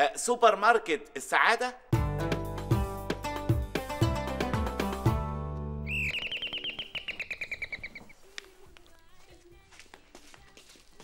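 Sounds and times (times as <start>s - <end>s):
fast bird-like chirps: 5.9s - 8.2s.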